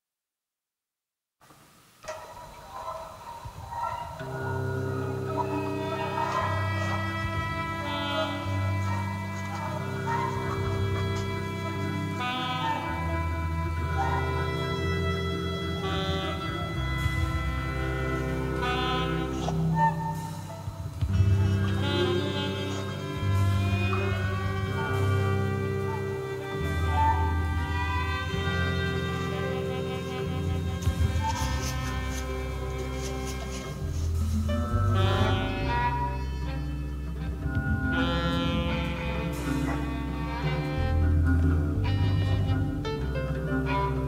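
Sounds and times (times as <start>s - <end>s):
mid-range melodic notes: 2.8s - 44.0s
low bowed string note: 4.2s - 44.0s.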